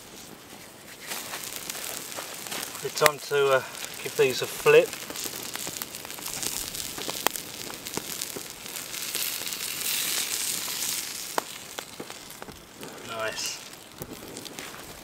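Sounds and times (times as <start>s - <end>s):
campfire crackling and popping: 0.0s - 15.0s
patties sizzling on hot stone: 0.0s - 15.0s.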